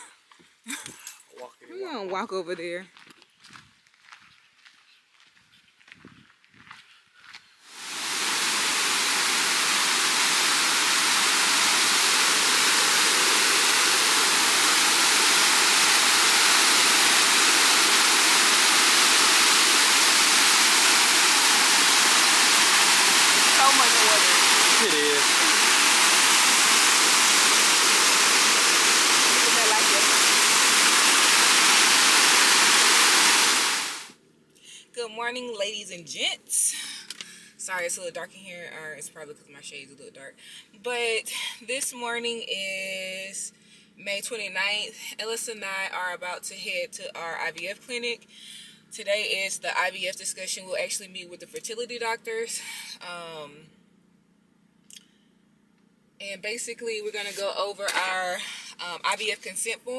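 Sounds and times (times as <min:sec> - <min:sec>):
waterfall rushing into pool: 0:07.7 - 0:34.2.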